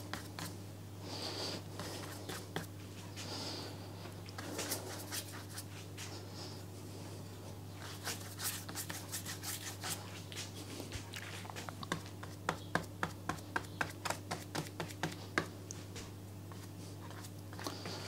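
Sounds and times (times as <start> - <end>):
paintbrush stroking on paper: 7.8 - 10.2.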